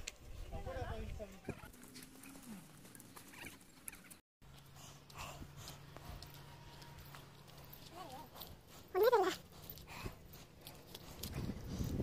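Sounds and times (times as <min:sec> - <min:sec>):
animal calls: 0:01.4 - 0:04.2.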